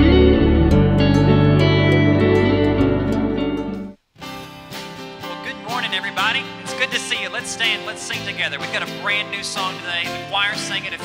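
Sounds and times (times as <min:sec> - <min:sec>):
man's voice: 0:05.3 - 0:11.0.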